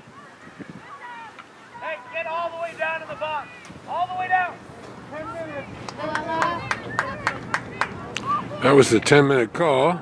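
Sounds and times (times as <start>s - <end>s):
distant shouting voices: 0.0s - 9.1s
rhythmic hand clapping: 5.8s - 8.2s.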